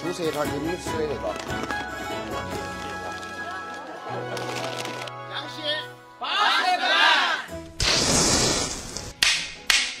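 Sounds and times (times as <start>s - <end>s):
whip-like cracks: 7.8s - 10.0s.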